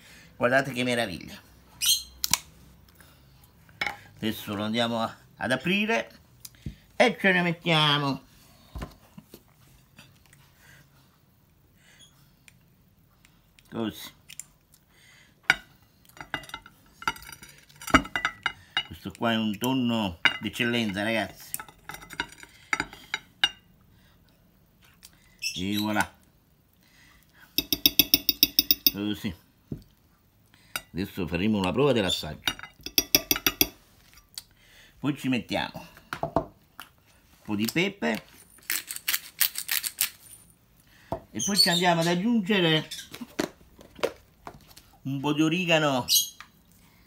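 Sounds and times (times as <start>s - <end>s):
glass jar handling: 15.5s - 19.0s, 20.2s - 23.6s, 27.6s - 29.0s, 32.5s - 33.8s.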